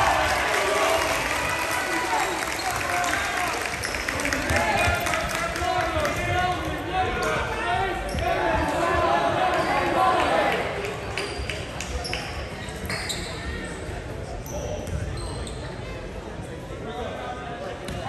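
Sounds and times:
sneakers squeaking on floor: 0:11.2 - 0:15.9.

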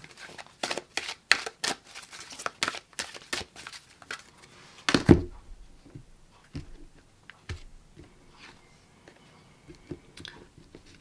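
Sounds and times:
cards shuffling: 0:00.0 - 0:05.2.

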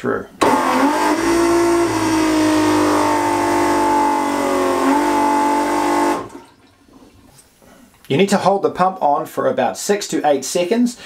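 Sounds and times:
toilet pump motor whine: 0:00.4 - 0:06.7.

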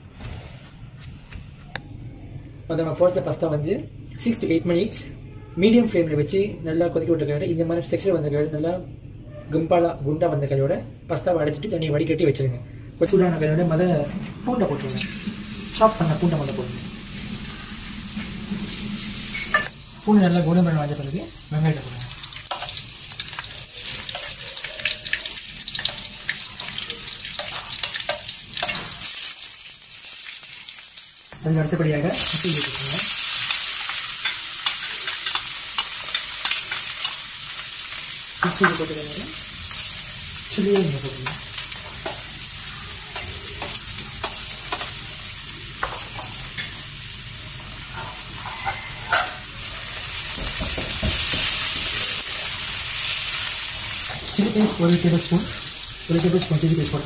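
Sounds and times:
oil sizzling in a wok: 0:13.7 - 0:57.0.

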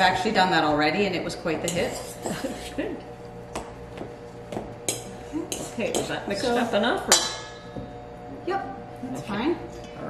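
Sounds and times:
utensils stirring dough in bowl: 0:01.3 - 0:07.8.

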